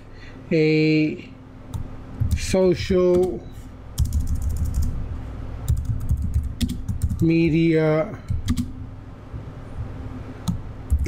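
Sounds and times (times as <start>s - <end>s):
keyboard typing: 1.7s - 3.4s, 4.0s - 5.0s, 5.7s - 7.7s, 8.3s - 8.8s, 10.4s - 11.0s.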